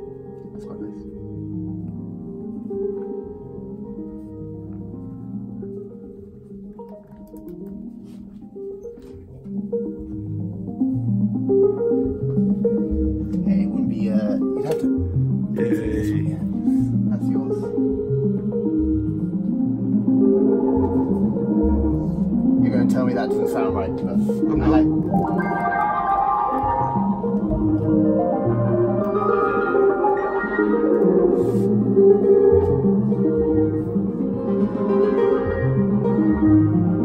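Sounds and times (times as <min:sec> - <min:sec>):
synthesizer chords: 0:00.0 - 0:37.0
synthesizer bass notes: 0:23.8 - 0:37.0.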